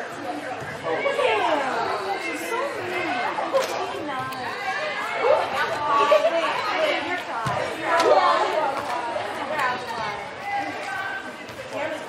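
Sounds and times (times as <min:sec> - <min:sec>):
people chattering and calling: 0:00.0 - 0:12.0.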